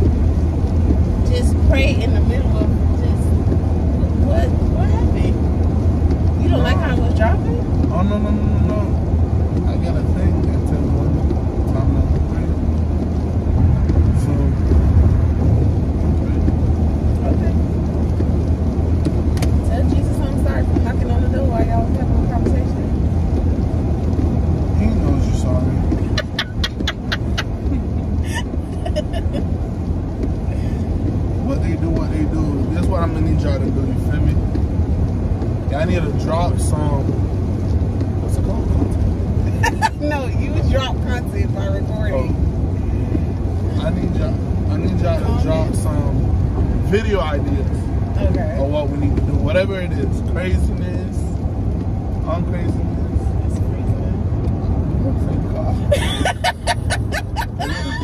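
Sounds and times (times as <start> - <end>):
car cabin road and engine rumble: 0.0 - 58.0.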